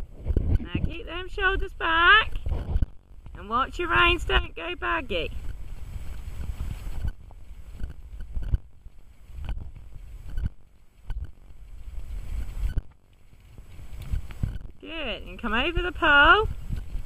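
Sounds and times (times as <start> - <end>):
gusty wind on microphone: 0.0 - 17.0
horse hoofbeats trotting: 0.0 - 17.0.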